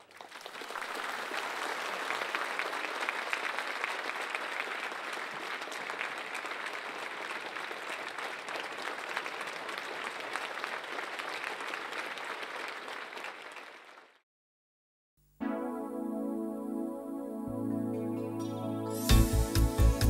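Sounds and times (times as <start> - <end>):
audience applauding: 0.0 - 14.2.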